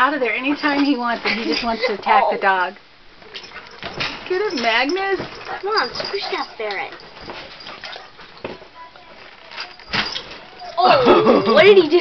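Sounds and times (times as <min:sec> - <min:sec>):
animals scuffling on bedding: 0:03.2 - 0:10.8.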